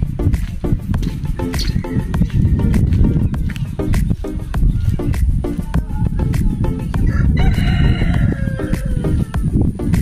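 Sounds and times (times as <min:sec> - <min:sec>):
background music with beat: 0:00.0 - 0:10.0
rooster crowing: 0:07.1 - 0:09.4.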